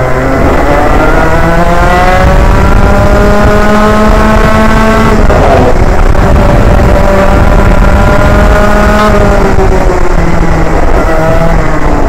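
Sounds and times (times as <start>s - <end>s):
kart engine revving: 0.0s - 12.0s
wind rush on microphone: 0.0s - 12.0s.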